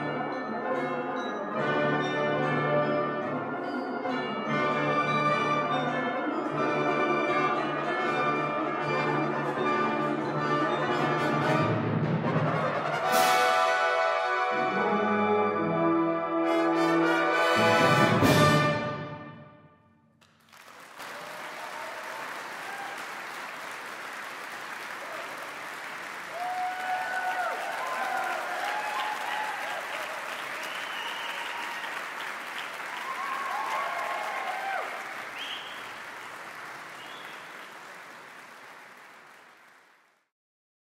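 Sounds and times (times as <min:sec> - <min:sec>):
audience applauding: 0:20.2 - 0:40.3
cheering voices: 0:20.8 - 0:38.0.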